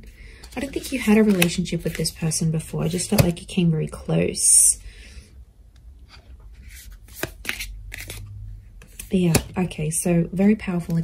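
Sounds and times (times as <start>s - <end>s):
card deck rustling: 0.4s - 3.4s, 6.6s - 9.5s.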